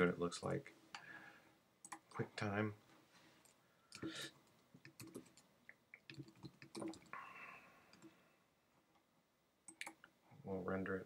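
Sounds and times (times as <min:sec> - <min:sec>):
mouse and keyboard clicks: 0:04.8 - 0:07.1.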